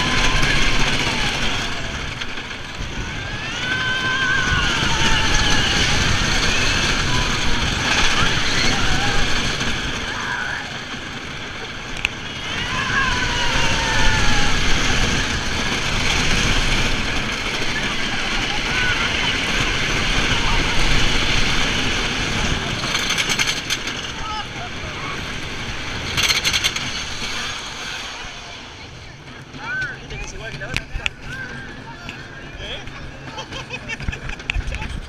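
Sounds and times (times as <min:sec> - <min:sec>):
riders screaming: 0:00.0 - 0:30.2, 0:31.1 - 0:35.0
roller coaster wheels rumbling: 0:00.0 - 0:35.0
wind rushing over microphone: 0:00.0 - 0:35.0.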